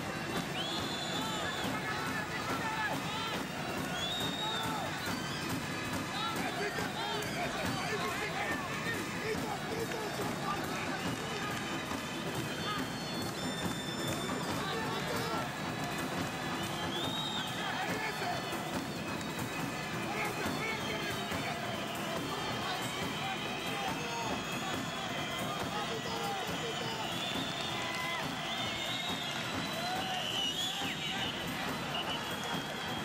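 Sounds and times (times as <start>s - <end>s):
many overlapping voices: 0.0s - 11.8s
music: 0.0s - 33.0s.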